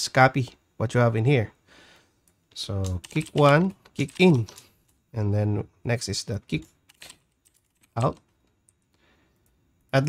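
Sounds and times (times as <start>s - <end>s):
computer keyboard typing: 2.8s - 4.7s, 6.5s - 8.8s.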